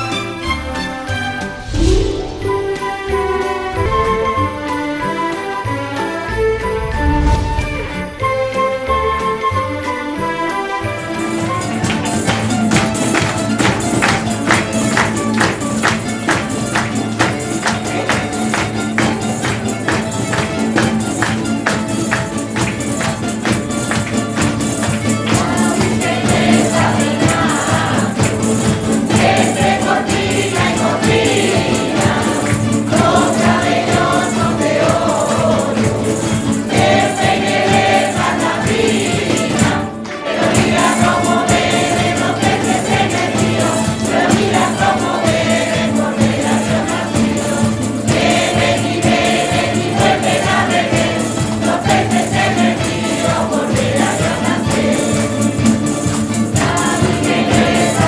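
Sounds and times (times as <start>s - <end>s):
guitars and lutes plucked: 0.0s - 9.9s, 11.1s - 58.0s
choir singing a carol: 0.0s - 58.0s.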